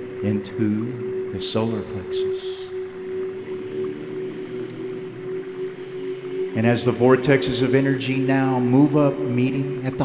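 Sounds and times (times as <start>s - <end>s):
singing crystal bowls drone: 0.0s - 10.0s.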